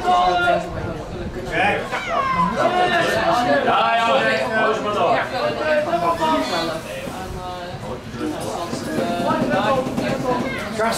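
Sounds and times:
people talking: 0.0 - 10.9.

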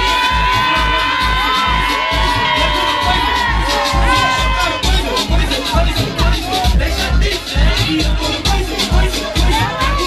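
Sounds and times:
crowd cheering: 0.0 - 7.2, 8.8 - 10.0
club dance music: 0.0 - 10.0.

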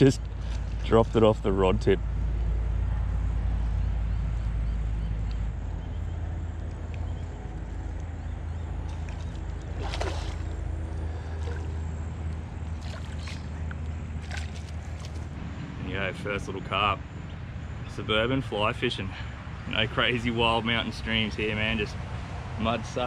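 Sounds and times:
steady low rumble: 0.0 - 19.0
fish splashing in water: 8.8 - 11.8, 12.6 - 15.3.

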